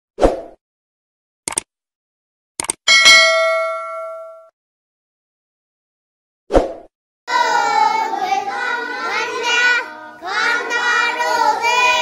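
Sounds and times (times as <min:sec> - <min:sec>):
notification bell ding: 0:02.9 - 0:04.5.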